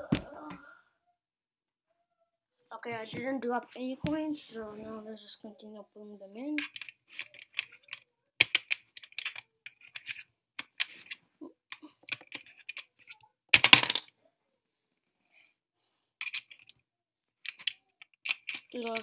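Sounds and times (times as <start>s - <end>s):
coin clattering drop: 13.6s - 14.0s.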